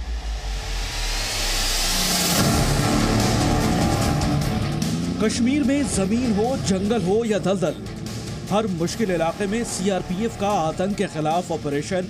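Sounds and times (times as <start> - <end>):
armoured vehicle driving past: 2.3 - 10.8.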